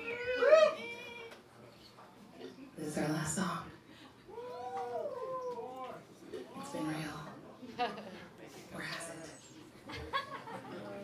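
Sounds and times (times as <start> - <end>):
high-pitched voice whoop: 0.0 - 1.3, 4.3 - 5.8.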